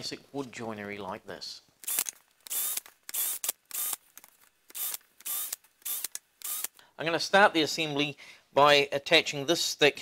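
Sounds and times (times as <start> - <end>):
cordless drill bursts: 1.8 - 4.0, 4.7 - 6.8.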